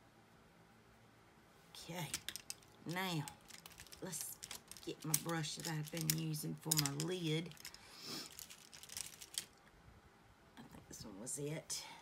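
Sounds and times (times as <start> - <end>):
brushes rustling: 1.9 - 9.6.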